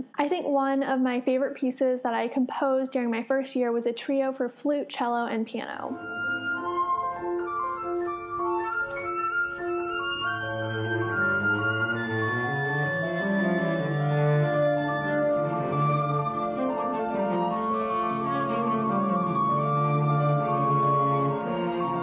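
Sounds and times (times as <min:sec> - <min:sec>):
flute melody: 0:05.9 - 0:22.0
flowing piano figures: 0:06.0 - 0:22.0
cello long low notes: 0:09.7 - 0:22.0.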